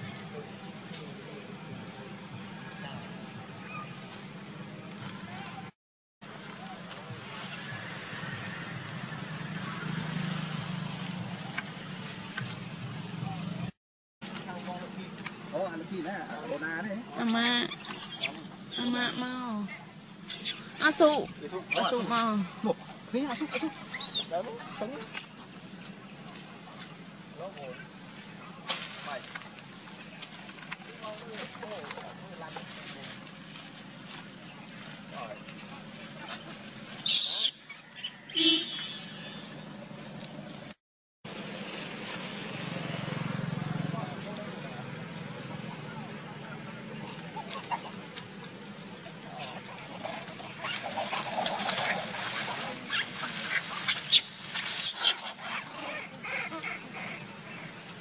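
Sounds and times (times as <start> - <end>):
monkeys squealing and screeching: 17.2 - 19.3, 20.3 - 22.2, 23.3 - 24.4, 36.2 - 38.4, 49.3 - 57.8.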